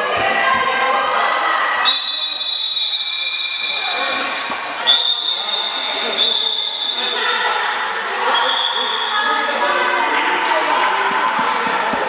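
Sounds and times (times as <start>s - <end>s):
children calling and shouting: 0.0s - 2.0s, 3.1s - 12.0s.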